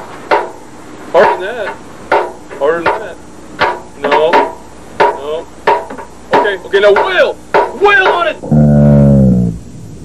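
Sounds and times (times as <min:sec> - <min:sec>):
hammer striking something hard: 0:00.3 - 0:00.6, 0:01.2 - 0:08.4.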